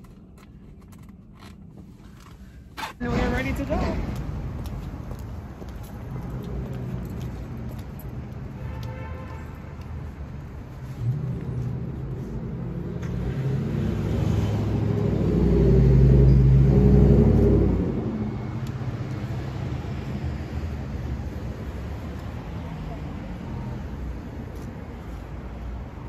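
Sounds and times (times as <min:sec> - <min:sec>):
street noise: 0:00.0 - 0:26.0
vehicle driving past: 0:10.4 - 0:24.2.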